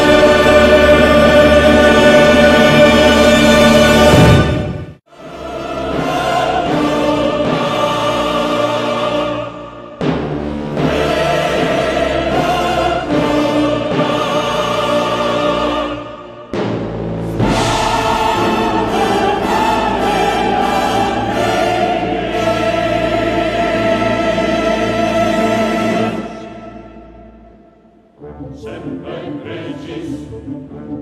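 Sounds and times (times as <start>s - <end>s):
choir singing with orchestra: 0.0s - 31.0s.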